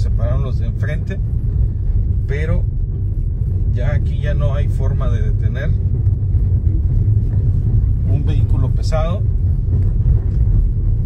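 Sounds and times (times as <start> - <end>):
car cabin road rumble: 0.0 - 11.0.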